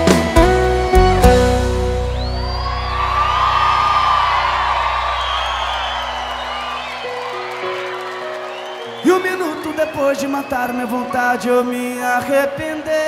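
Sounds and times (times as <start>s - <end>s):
live band holding a chord: 0.0s - 10.6s
concert crowd cheering and whooping: 0.6s - 13.0s.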